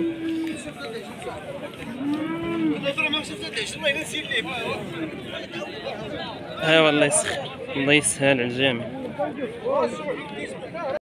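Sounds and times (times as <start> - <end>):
cow mooing: 0.0 - 0.6, 1.9 - 2.9
chatter of voices: 0.0 - 11.0.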